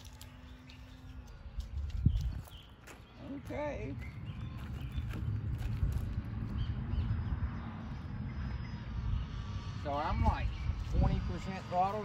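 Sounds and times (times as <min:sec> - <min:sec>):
distant model plane motor whine: 0:00.0 - 0:03.2, 0:04.0 - 0:12.0
wind buffeting microphone: 0:00.0 - 0:12.0.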